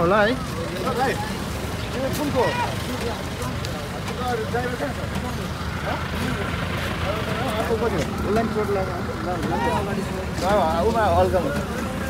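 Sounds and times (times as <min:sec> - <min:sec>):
people talking: 0:00.0 - 0:12.0
road traffic rumble: 0:00.0 - 0:12.0.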